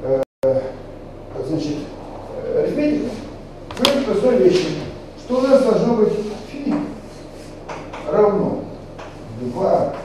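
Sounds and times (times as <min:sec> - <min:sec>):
man lecturing: 0:00.0 - 0:07.0, 0:08.0 - 0:10.0.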